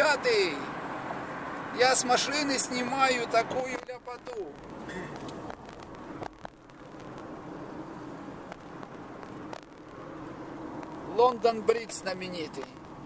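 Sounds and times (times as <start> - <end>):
car road and engine noise: 0.0 - 13.0.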